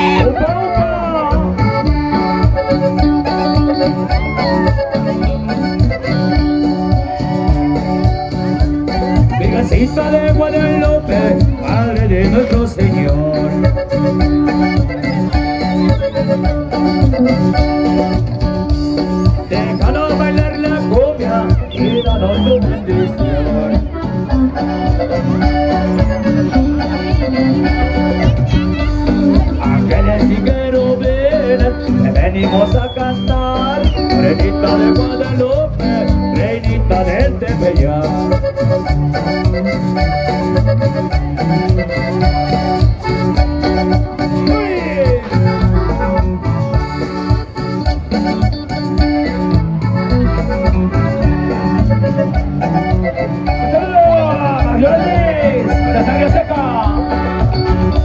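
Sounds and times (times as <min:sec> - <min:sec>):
band music with electronic keyboard: 0:00.0 - 0:58.0
steady bass beat: 0:00.0 - 0:58.0.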